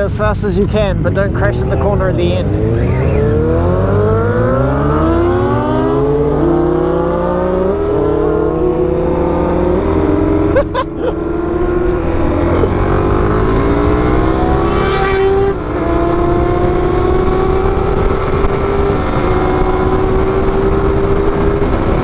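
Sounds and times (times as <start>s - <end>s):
motorcycle engine accelerating: 0.0s - 22.0s
wind rushing over microphone: 2.4s - 22.0s.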